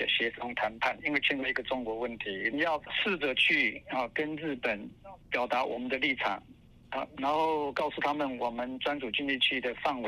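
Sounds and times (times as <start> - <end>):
person talking over phone line: 0.0 - 10.0.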